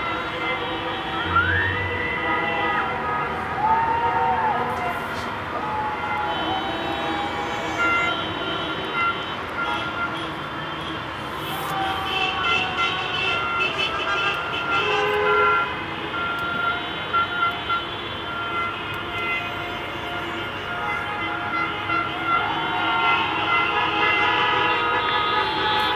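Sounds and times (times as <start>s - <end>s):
car horns honking: 0.0s - 3.6s, 5.1s - 25.9s
traffic noise: 0.0s - 25.9s.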